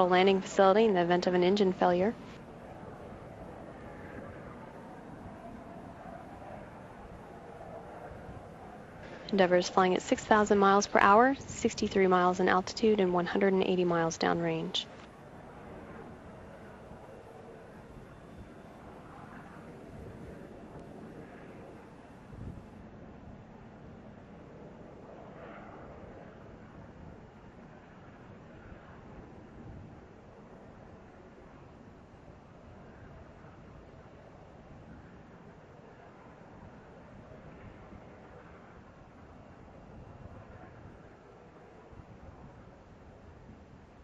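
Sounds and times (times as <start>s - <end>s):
faint steady rushing noise: 0.0s - 44.0s.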